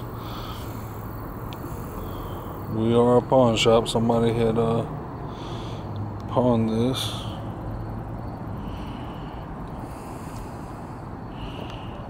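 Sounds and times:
constant hum: 0.0 - 12.0
low background rumble: 0.0 - 12.0.

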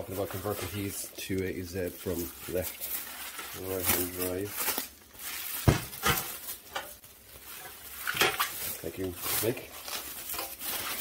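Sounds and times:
bubble wrap rustling and crinkling: 0.0 - 11.0.

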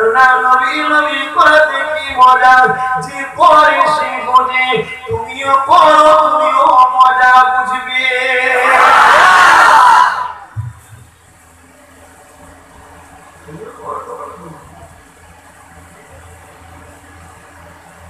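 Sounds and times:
man chanting through loudspeakers: 0.0 - 8.7
low sound system hum: 0.0 - 18.0
faint murmur of voices: 10.2 - 18.0.

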